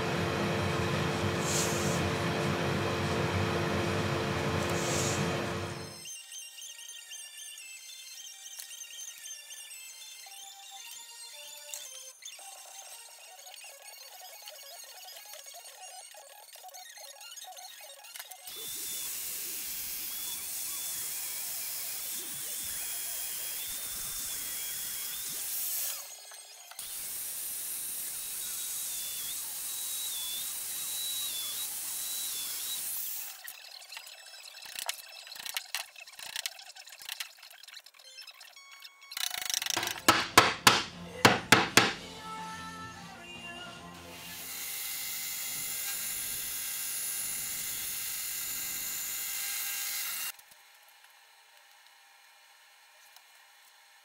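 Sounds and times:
joiner motor whine: 0.0 - 6.0, 39.8 - 46.5
sharp knocks: 39.8 - 42.0.

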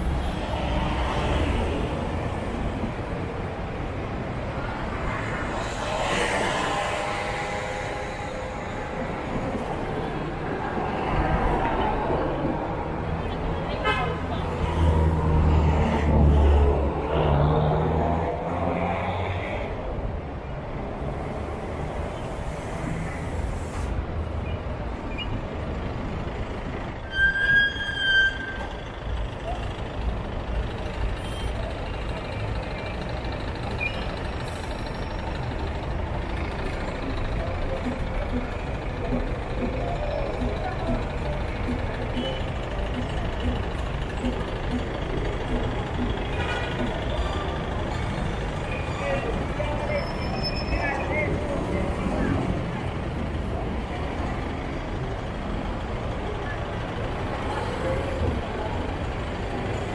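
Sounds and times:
traffic rumble: 0.0 - 59.9
high-pitched horn-like tone: 6.2 - 8.9
passers-by talking: 35.2 - 59.9.

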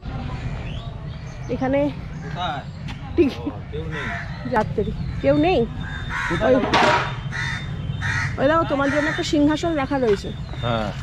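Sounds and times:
crows cawing: 3.6 - 9.7.

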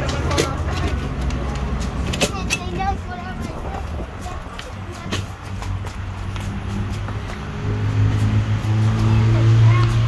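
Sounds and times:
faint voices: 0.0 - 7.4
motor vehicle rumbling: 0.0 - 10.0.

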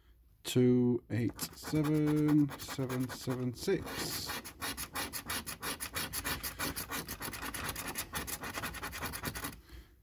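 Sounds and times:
coin scraping scratch card: 1.3 - 9.6.

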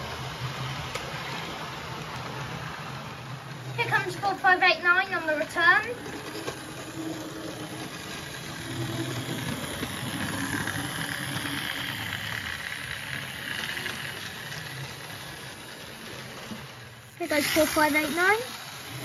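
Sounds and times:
model train motor whirring: 0.0 - 19.0
wheels hissing on rail: 0.0 - 19.0.

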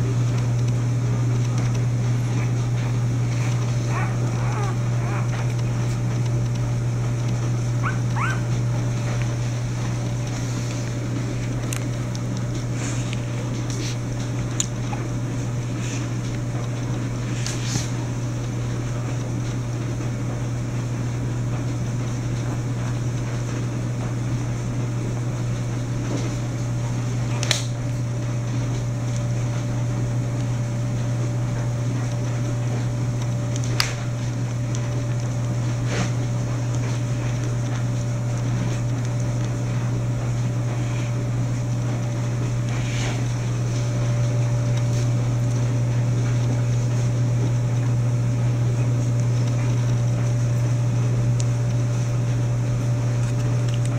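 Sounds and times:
low mechanical hum: 0.0 - 53.9.

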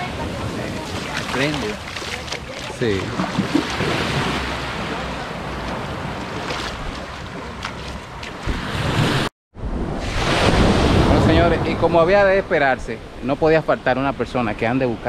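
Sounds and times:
small waves washing onto beach: 0.0 - 9.3.

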